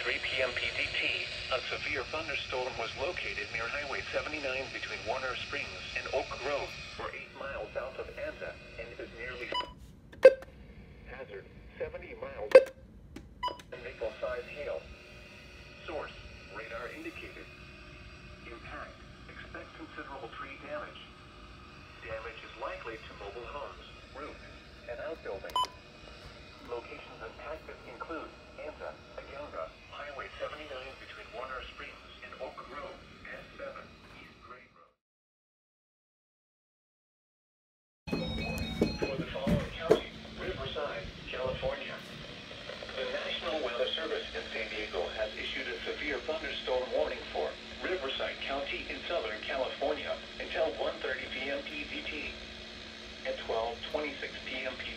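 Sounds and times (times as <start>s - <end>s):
voice through small radio speaker: 0.0s - 9.6s, 13.6s - 14.9s, 15.8s - 17.5s, 18.4s - 21.1s, 22.0s - 25.7s, 26.6s - 35.0s, 38.8s - 42.2s, 42.8s - 52.4s.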